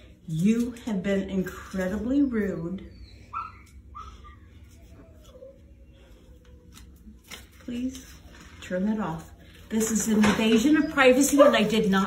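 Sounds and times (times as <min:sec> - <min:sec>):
dog whining: 0:02.4 - 0:06.7.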